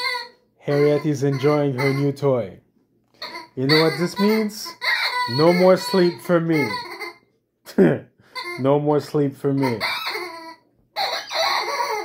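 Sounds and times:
squeaky toy squealing: 0.0 - 2.5, 3.2 - 7.3, 8.3 - 12.0.

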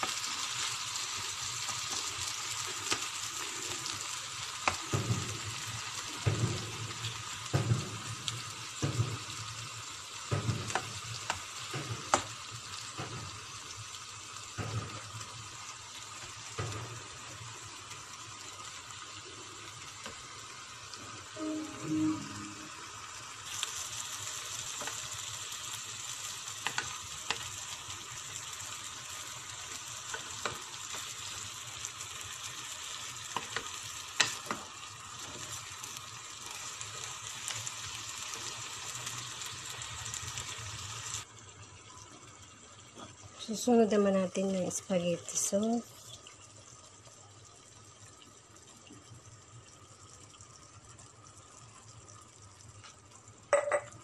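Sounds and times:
meat sizzling in a frying pan: 0.0 - 54.0
wooden spatula knocking on pan: 10.3 - 12.3.

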